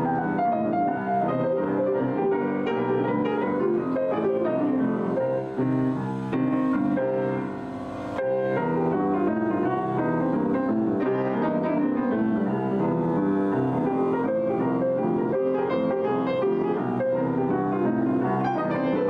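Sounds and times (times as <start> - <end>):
two grand pianos playing: 0.0 - 19.0.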